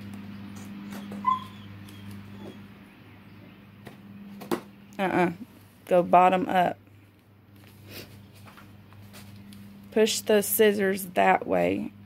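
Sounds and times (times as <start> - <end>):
steady low hum: 0.0 - 12.0
voice: 5.0 - 6.8, 10.0 - 11.9.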